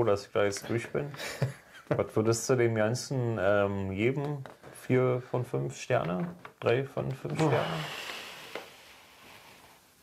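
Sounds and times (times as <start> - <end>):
faint hiss: 7.3 - 10.0.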